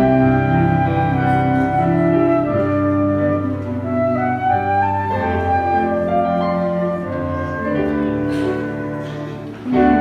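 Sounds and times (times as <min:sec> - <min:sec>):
flute melody: 0:00.0 - 0:10.0
piano: 0:00.0 - 0:10.0.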